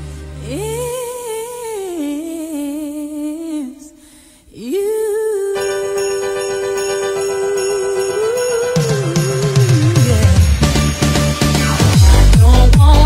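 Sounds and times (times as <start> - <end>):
woman singing with vibrato: 0.4 - 10.8, 12.0 - 13.0
small bells shaking: 5.6 - 11.3
instrumental backing: 5.6 - 13.0.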